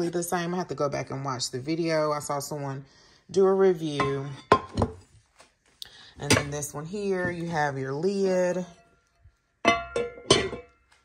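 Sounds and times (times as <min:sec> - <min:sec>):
pan and lid clanking: 0:09.6 - 0:10.9.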